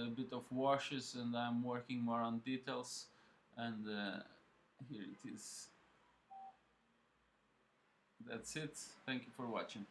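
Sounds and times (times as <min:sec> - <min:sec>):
short electronic beep: 0:06.3 - 0:06.6.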